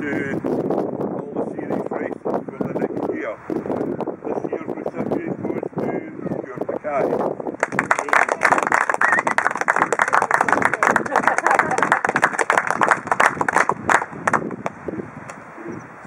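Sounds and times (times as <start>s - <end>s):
small group applauding: 7.6s - 14.5s.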